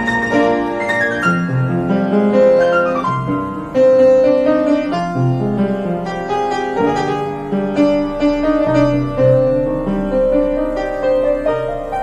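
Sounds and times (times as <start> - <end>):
upright piano playing: 0.0 - 12.0.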